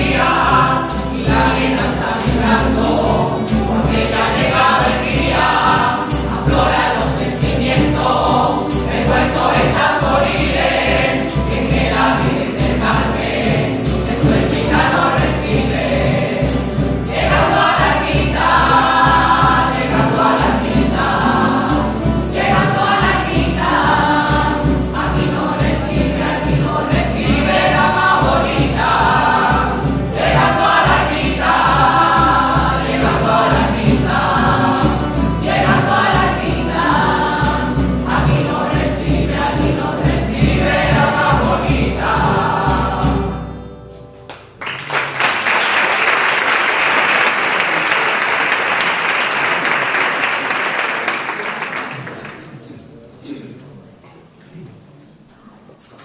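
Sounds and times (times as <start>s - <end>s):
choir of men and women singing: 0.0s - 43.8s.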